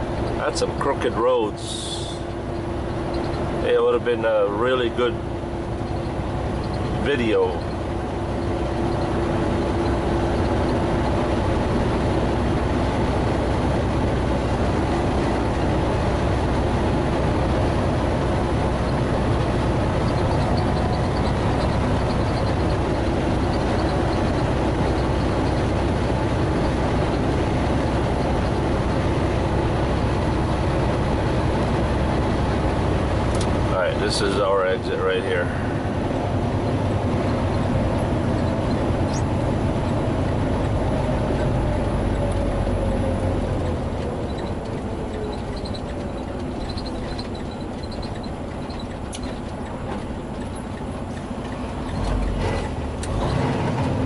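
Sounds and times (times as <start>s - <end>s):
road noise inside cab: 0.0s - 54.0s
truck diesel engine drone: 0.0s - 54.0s.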